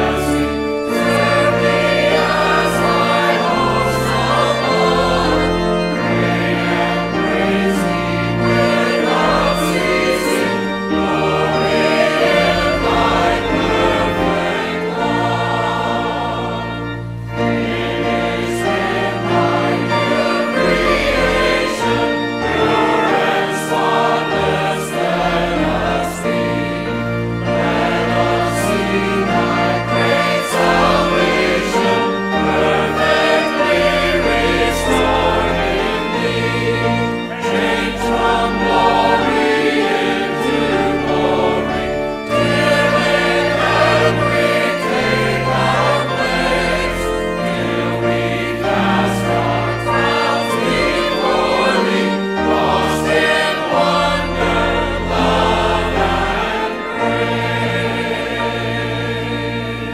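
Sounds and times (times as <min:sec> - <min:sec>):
choir singing a hymn: 0:00.0 - 0:59.9
keyboard accompaniment: 0:00.0 - 0:59.9.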